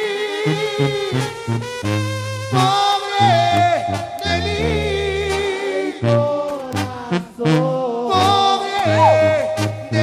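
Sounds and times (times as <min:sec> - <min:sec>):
low tuba bass: 0:00.4 - 0:10.0
wind instruments holding notes: 0:07.5 - 0:10.0.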